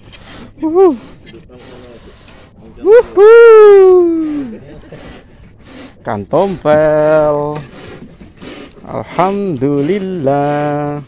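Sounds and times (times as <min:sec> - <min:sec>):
man's drawn-out exclamation: 0:02.8 - 0:04.4.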